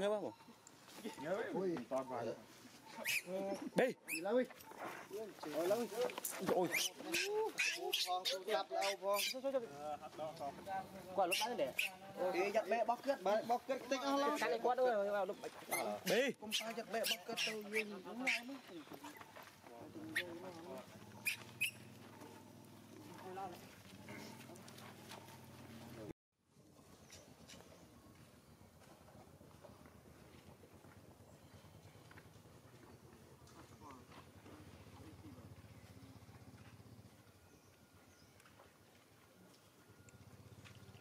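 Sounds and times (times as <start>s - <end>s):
baby monkey crying: 6.7s - 9.4s, 11.3s - 12.0s, 16.5s - 19.2s, 21.2s - 21.9s
short sharp high squeaks: 21.2s - 21.9s.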